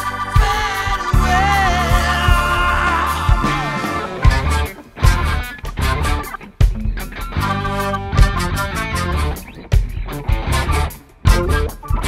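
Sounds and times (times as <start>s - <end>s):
bass guitar: 0.0s - 12.0s
drum kit hits: 0.0s - 12.0s
electric guitar: 0.0s - 12.0s.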